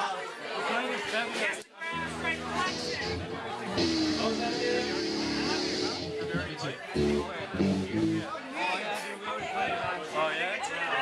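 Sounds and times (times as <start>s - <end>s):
people talking: 0.0s - 11.0s
electric guitar chords: 1.9s - 8.3s.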